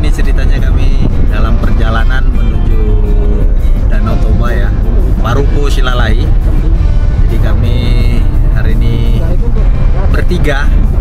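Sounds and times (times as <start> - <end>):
background music: 0.0 - 11.0
car rumble from inside: 0.0 - 11.0
man talking: 0.0 - 11.0.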